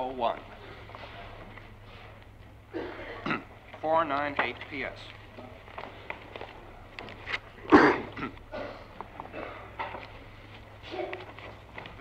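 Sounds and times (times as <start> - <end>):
low mains hum: 0.0 - 12.0
person coughing: 2.7 - 3.5, 7.7 - 9.8.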